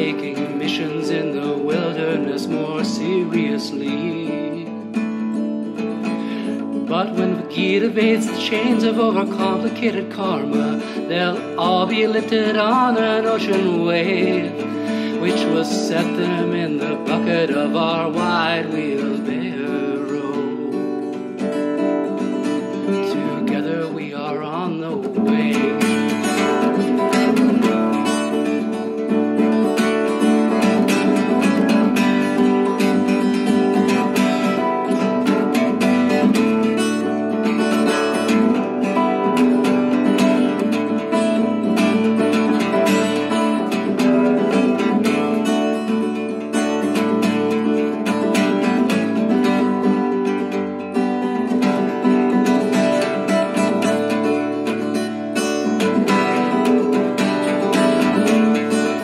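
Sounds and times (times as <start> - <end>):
strummed acoustic guitar: 0.0 - 59.0.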